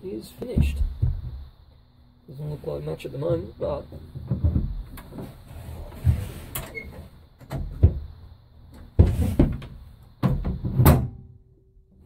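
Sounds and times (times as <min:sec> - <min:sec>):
metal clunks: 0:03.2 - 0:06.7, 0:08.8 - 0:11.3.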